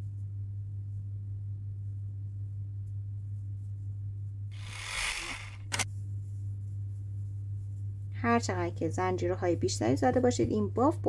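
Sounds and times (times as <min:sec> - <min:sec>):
low electrical hum: 0:00.0 - 0:11.0
quick sharp clicks: 0:04.6 - 0:05.9.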